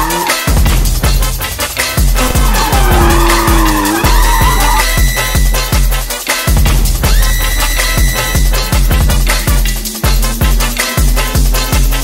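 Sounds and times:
tyres squealing: 0:00.0 - 0:05.8
electronic music with fast beat: 0:00.0 - 0:12.0.

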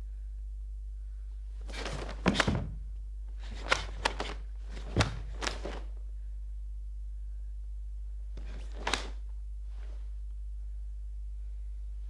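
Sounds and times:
fabric swishing: 0:01.6 - 0:02.8, 0:03.4 - 0:05.9, 0:08.4 - 0:10.2
sharp fabric snaps: 0:01.7 - 0:02.8, 0:03.4 - 0:05.9, 0:08.4 - 0:09.2.

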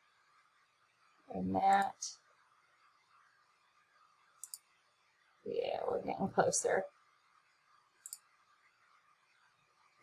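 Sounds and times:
computer mouse double click: 0:04.4 - 0:04.6.

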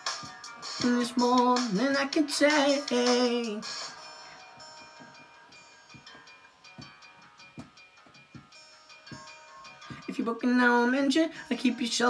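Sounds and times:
held instrumental chords: 0:00.0 - 0:10.3.

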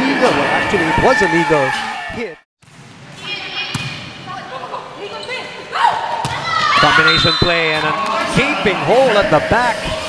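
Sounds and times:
players calling out: 0:04.3 - 0:10.0.

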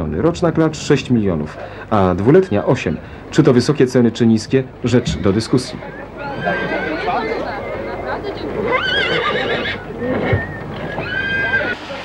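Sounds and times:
crowd chatter: 0:00.0 - 0:12.0
horse neighing: 0:04.8 - 0:12.0.

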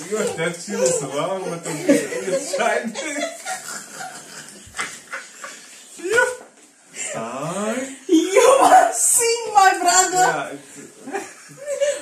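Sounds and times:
people laughing hard: 0:00.0 - 0:06.4, 0:11.1 - 0:12.0.

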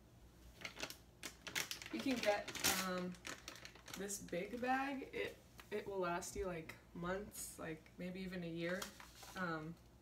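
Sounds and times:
plastic pouch crinkling: 0:00.6 - 0:04.8, 0:08.6 - 0:09.4.

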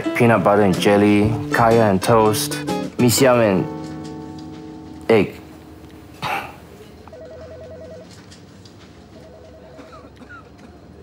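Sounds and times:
telephone ringing: 0:07.1 - 0:08.3, 0:09.1 - 0:10.0.

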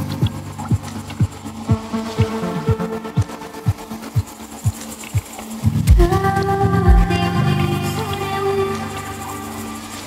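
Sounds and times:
electronic dance music: 0:00.2 - 0:10.0
kick drum beating: 0:05.9 - 0:06.1, 0:06.9 - 0:07.2.

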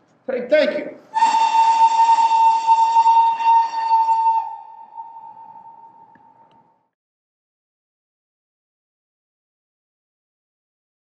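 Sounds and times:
steam train whistle: 0:01.1 - 0:06.2.

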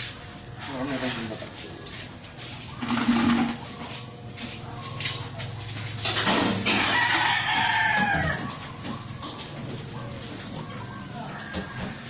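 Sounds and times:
rooster crowing: 0:06.6 - 0:08.8.

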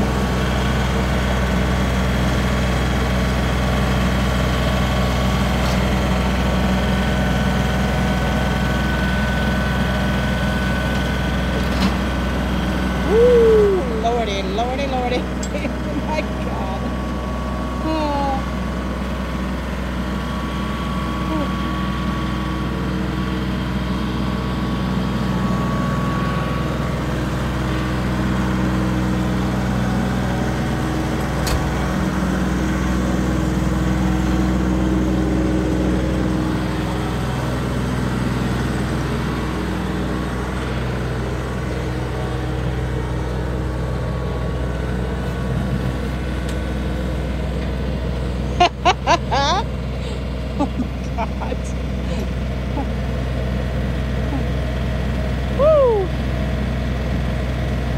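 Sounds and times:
tractor engine running: 0:00.0 - 0:57.9.

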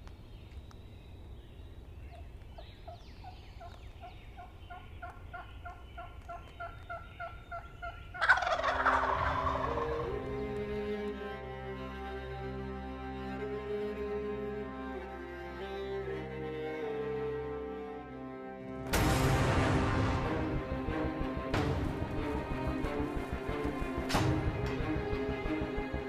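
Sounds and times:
turkey gobbling: 0:03.6 - 0:10.7
bowed cello-like string music: 0:08.8 - 0:26.0.

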